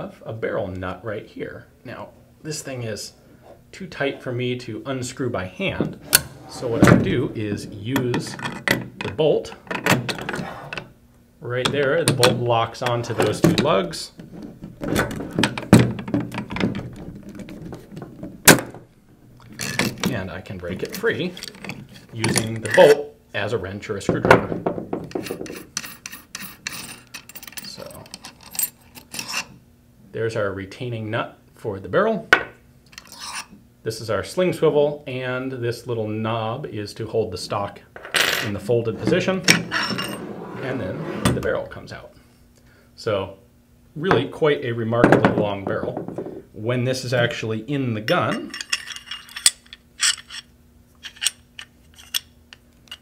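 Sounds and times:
metal scrape: 0:06.0 - 0:08.6, 0:10.2 - 0:10.9, 0:33.0 - 0:33.5, 0:38.4 - 0:41.4
metal nut scraping on threads: 0:25.1 - 0:29.6, 0:32.9 - 0:33.6, 0:38.4 - 0:40.4, 0:48.1 - 0:53.0
metal gun parts clicking: 0:48.3 - 0:53.0.

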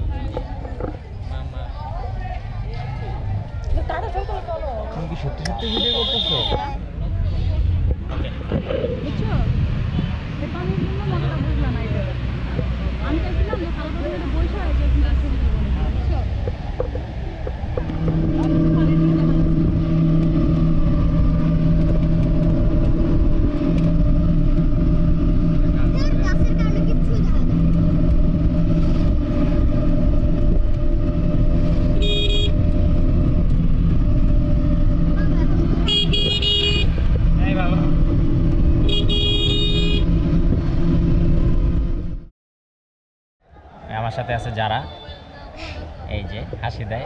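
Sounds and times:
vehicle engine running: 0:00.0 - 0:42.3
high-pitched horn: 0:05.6 - 0:06.7.

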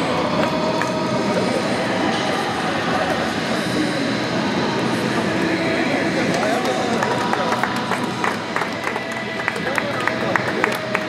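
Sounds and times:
many voices echoing: 0:00.0 - 0:11.0
steady background roar: 0:00.0 - 0:11.0.

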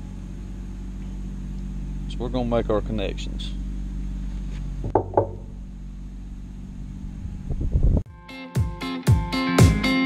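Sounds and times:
steady low hum: 0:00.0 - 0:08.1.

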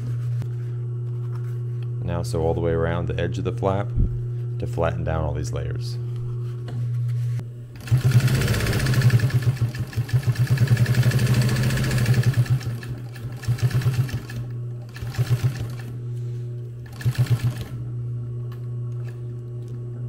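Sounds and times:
low motor hum: 0:00.0 - 0:20.0
sewing machine stitching: 0:07.8 - 0:15.9, 0:16.8 - 0:17.8.

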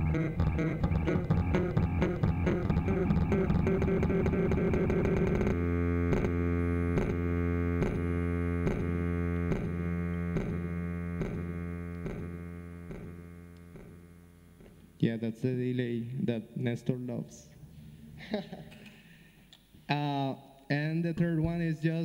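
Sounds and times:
electric bass with delay echoes: 0:00.0 - 0:14.4.

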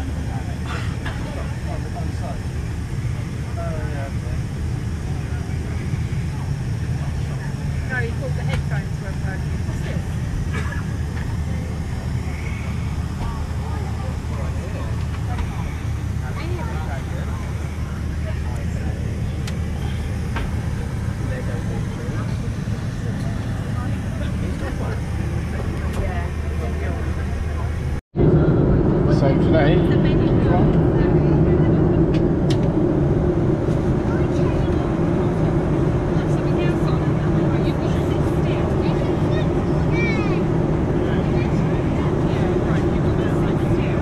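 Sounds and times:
airliner cabin rumble: 0:00.0 - 0:44.0
faint passenger voices: 0:00.0 - 0:44.0.

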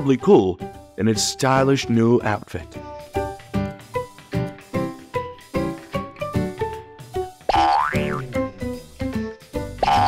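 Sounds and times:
upbeat plucked background music: 0:00.0 - 0:10.0.

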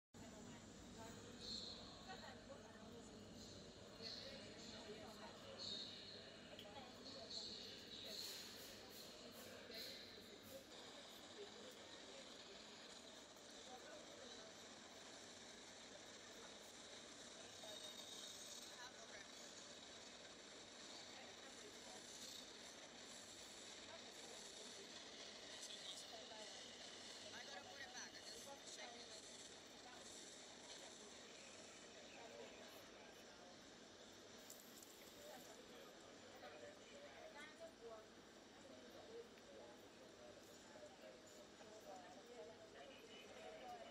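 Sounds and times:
faint indistinct voices: 0:00.2 - 0:43.9.

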